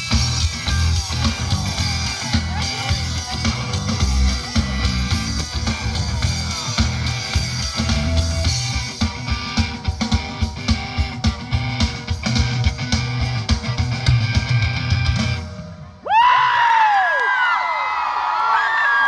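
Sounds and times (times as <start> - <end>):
drum kit beat: 0.0 - 15.6
electric guitar: 0.0 - 15.8
live band through speakers: 0.0 - 17.1.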